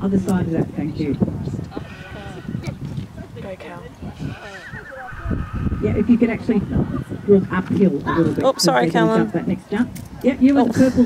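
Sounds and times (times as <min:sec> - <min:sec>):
horse whinnying: 0:04.1 - 0:07.2.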